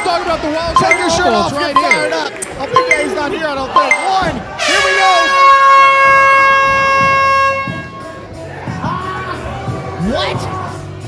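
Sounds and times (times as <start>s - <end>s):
entrance music: 2.8s - 3.2s
air horn blast: 4.6s - 8.1s.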